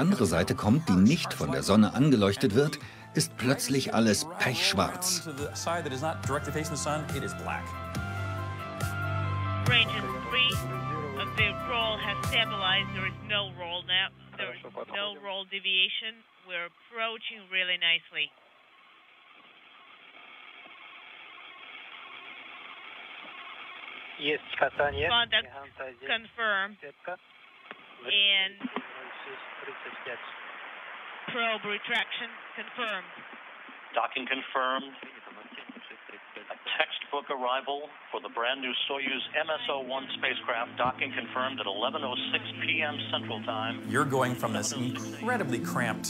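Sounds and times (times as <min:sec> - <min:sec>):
radio static hiss: 0:00.0 - 0:06.4, 0:09.7 - 0:46.0
steady low hum: 0:24.2 - 0:28.1, 0:39.2 - 0:46.0.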